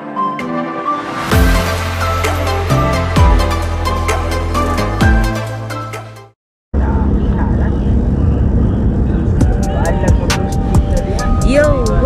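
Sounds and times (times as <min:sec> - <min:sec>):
road and engine rumble inside car: 0:06.8 - 0:12.0.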